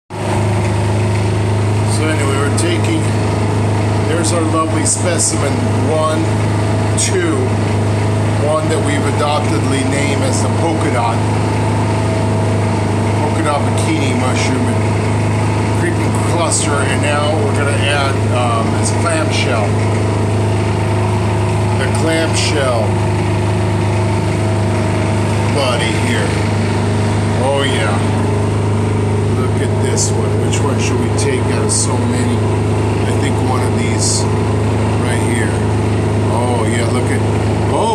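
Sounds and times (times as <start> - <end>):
low machine hum: 0.1 - 37.9.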